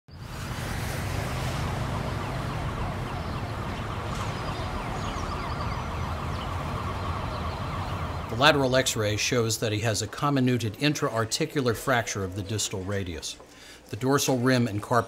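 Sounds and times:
low traffic rumble: 0.1 - 9.9
emergency siren wailing: 0.2 - 9.3.

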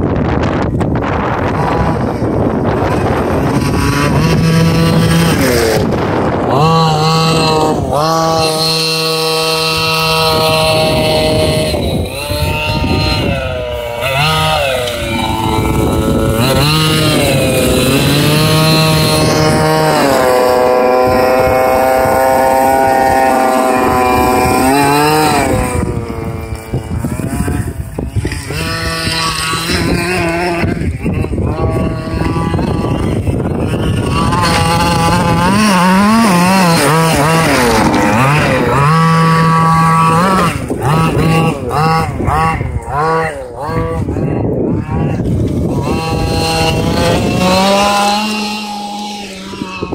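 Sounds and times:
two-stroke engine revving: 0.0 - 49.9
wheels on loose gravel: 0.6 - 49.9.

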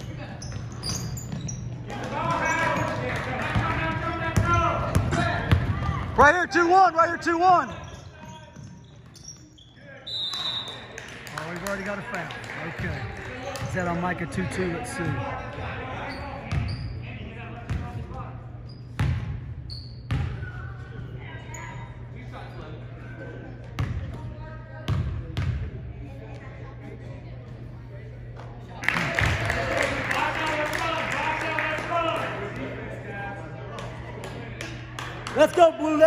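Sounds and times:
crowd voices: 0.0 - 18.6, 20.3 - 36.0.

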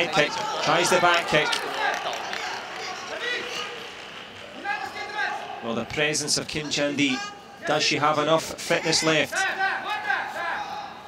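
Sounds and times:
background murmur in a hall: 0.0 - 11.0.

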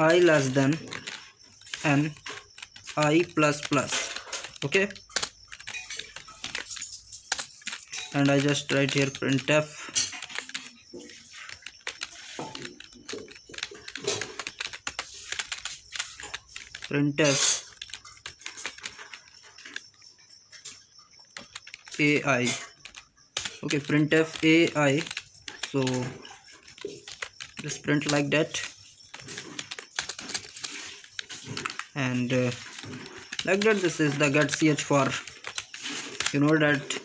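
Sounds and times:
keyboard typing: 0.0 - 37.0.

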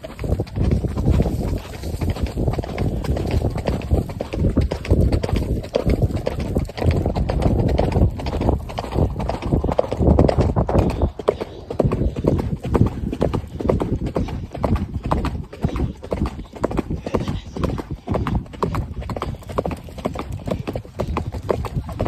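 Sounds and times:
horse hoofbeats on dirt: 0.0 - 22.0.

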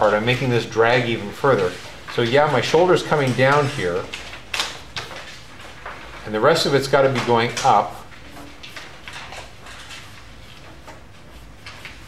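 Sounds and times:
pencil scratching on paper: 7.5 - 12.0.

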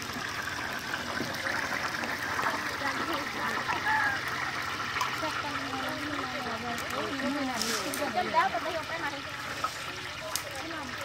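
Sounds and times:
fritters sizzling in hot oil: 0.0 - 11.0
voices chatting: 2.6 - 11.0.

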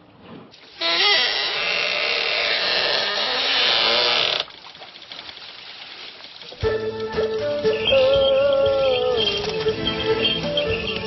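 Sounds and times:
wooden press creaking and grinding: 0.8 - 4.5.

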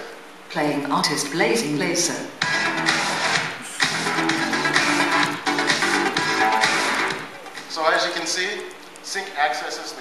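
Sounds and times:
music playing through car speakers: 2.4 - 7.4.

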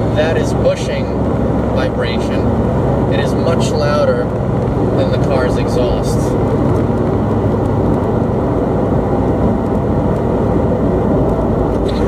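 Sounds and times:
car driveline vibration drone: 0.0 - 12.0
quiet exhaust: 0.0 - 12.0.

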